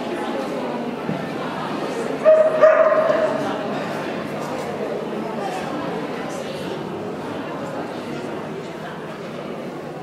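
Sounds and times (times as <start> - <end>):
dog barking: 2.2 - 3.2.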